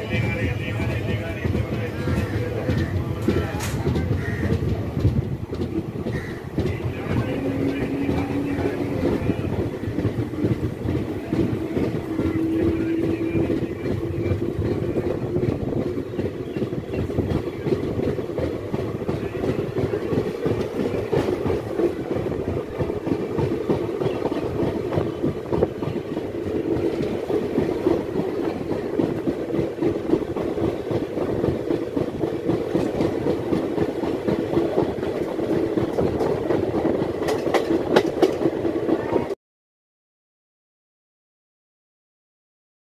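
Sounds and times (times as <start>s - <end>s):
train wheels clickety-clack on rails: 0.0s - 39.4s.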